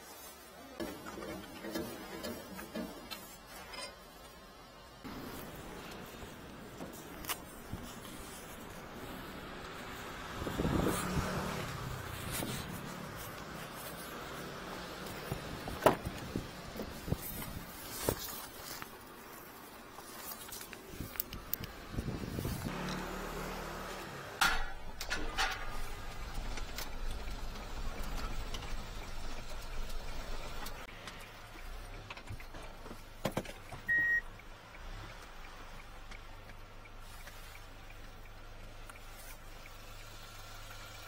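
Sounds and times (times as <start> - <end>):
truck engine rumbling: 0.8 - 41.0.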